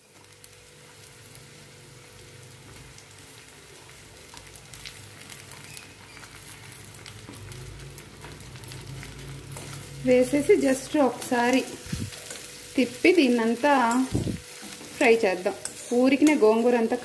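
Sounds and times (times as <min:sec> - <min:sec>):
leaves sizzling in oil: 0:00.0 - 0:17.0.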